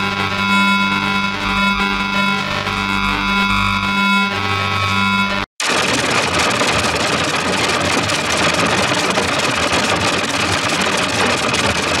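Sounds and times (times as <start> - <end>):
harsh distorted rumbling noise: 0.0 - 12.0.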